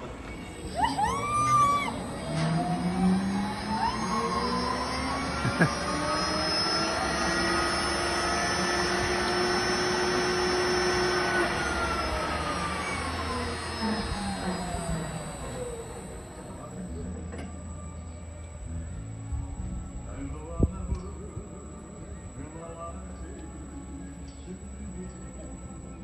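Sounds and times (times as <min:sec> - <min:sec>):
zipline trolley whine: 0:00.0 - 0:26.0.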